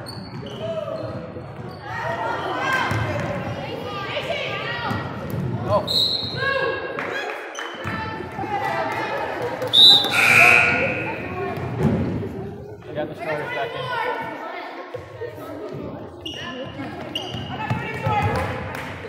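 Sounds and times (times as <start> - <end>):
sneakers squeaking on floor: 0.0 - 2.2, 9.8 - 11.8, 16.0 - 18.4
voices echoing in hall: 0.4 - 19.0
basketball bouncing on court: 16.9 - 18.7.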